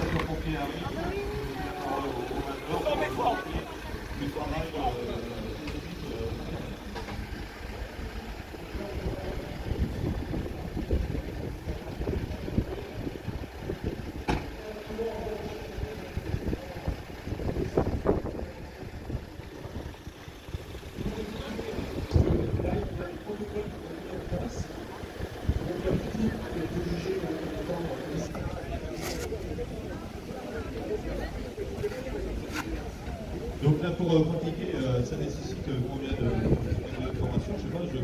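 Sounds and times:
scattered voices: 0.0s - 38.0s
vehicle engine running: 0.0s - 38.0s
wind rumbling on microphone: 8.8s - 14.3s, 16.1s - 23.1s, 36.2s - 37.7s.

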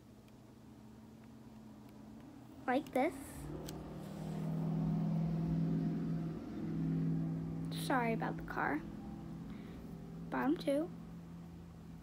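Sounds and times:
car engine running: 2.5s - 12.0s.

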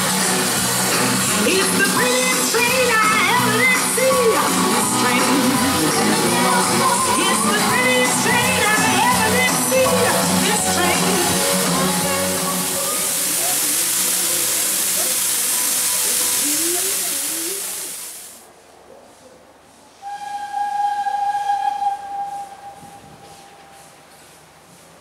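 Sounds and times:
faint band music and singing: 0.0s - 15.3s
steam locomotive hissing: 0.0s - 18.5s, 19.8s - 25.0s
steam whistle: 20.0s - 24.0s.

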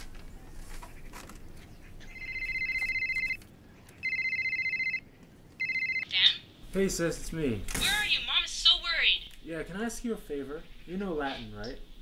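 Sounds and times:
telephone ringing: 2.1s - 3.4s, 4.0s - 6.3s.

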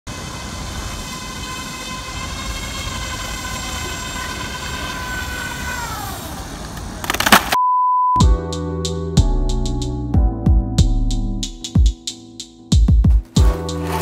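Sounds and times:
loud burst of hiss: 0.1s - 6.6s
model motor and propeller whine: 0.1s - 6.8s.

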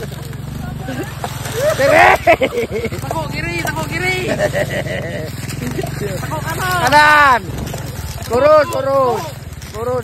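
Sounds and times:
people talking: 0.0s - 10.0s
small vehicle engine running: 0.0s - 10.0s.

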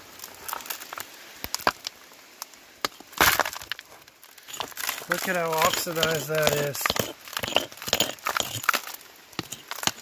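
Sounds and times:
stones clinking: 4.4s - 10.0s
metal pick knocking on stone: 4.5s - 8.6s, 9.4s - 10.0s.

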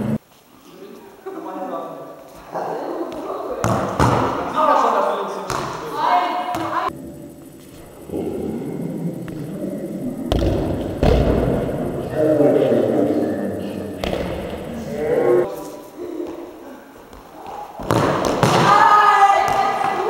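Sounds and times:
football kicked in echoing hall: 3.1s - 4.8s, 5.4s - 6.9s, 10.2s - 12.2s, 14.0s - 14.9s, 16.2s - 20.0s.

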